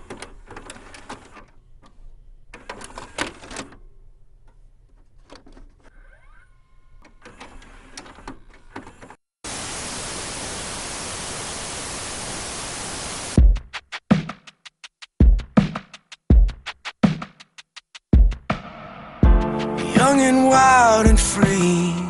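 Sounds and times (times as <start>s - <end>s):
static hiss: 9.5s - 13.4s.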